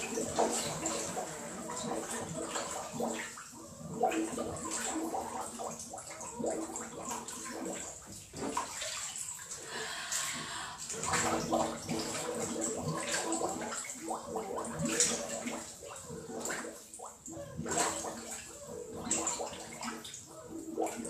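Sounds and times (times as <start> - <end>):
water splashing and bubbling: 0.0 - 21.0
person talking underwater: 9.6 - 15.3.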